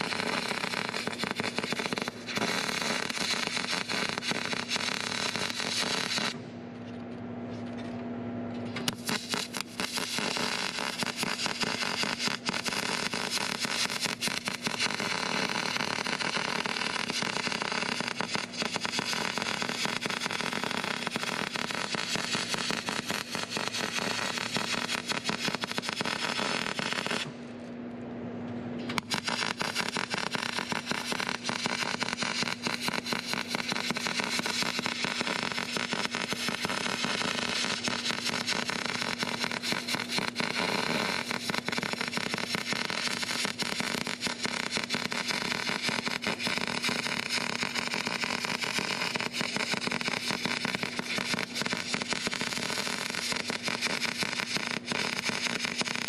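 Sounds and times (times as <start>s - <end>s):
welding arc crackling: 0.0s - 6.4s, 8.8s - 27.4s, 28.9s - 56.0s
low steady hum: 0.0s - 39.7s.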